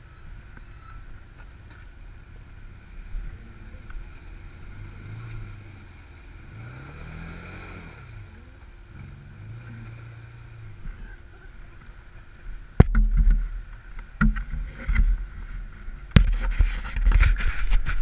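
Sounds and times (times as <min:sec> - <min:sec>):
off-road engine revving: 0:00.0 - 0:16.4.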